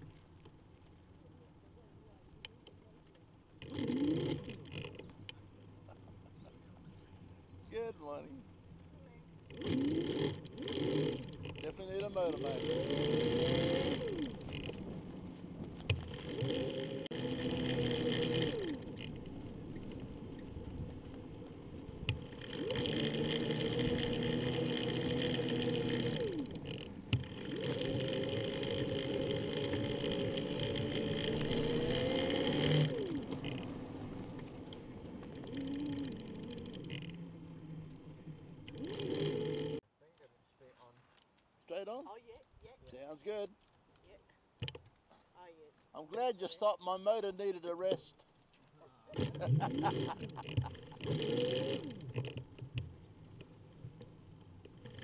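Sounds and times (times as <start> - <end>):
trike rumbling and clicking: 2.2 - 40.3, 44.6 - 45.0, 49.1 - 55.0
electric motor whining: 9.5 - 14.8, 15.8 - 19.3, 22.1 - 39.8, 49.2 - 52.6.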